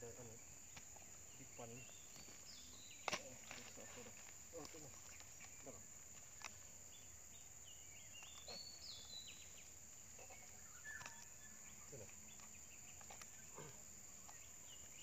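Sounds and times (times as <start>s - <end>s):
high insect drone: 0.0s - 15.0s.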